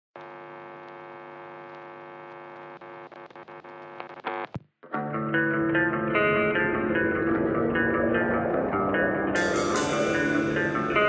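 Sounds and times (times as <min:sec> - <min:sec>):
rock band playing: 0:05.0 - 0:11.0
buzzy synth tone: 0:06.3 - 0:11.0.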